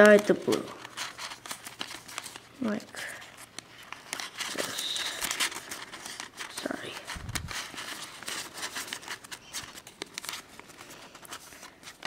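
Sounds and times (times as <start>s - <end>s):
paper rustling and crinkling: 0.0s - 12.0s.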